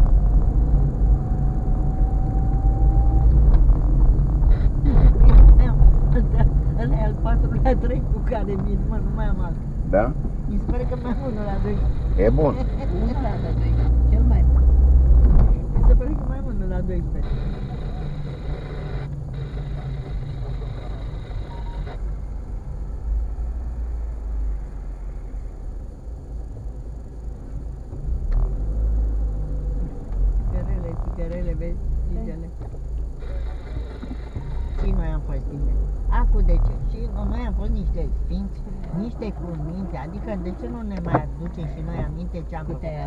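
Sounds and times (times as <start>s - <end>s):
car engine rumble and road noise: 0.0s - 43.0s
indistinct voices: 4.4s - 14.7s, 30.5s - 43.0s.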